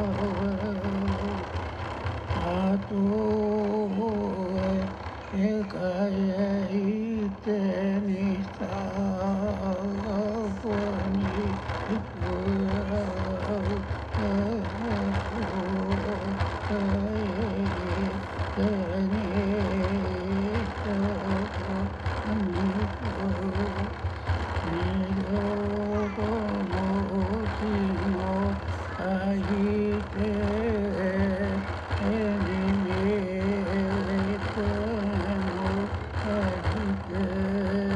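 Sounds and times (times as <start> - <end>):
person chanting: 0.0 - 1.6, 2.3 - 37.9.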